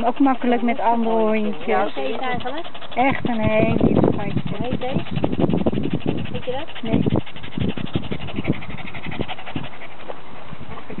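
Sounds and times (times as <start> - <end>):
people talking: 0.0 - 5.2, 6.2 - 7.2
dog panting: 0.0 - 11.0.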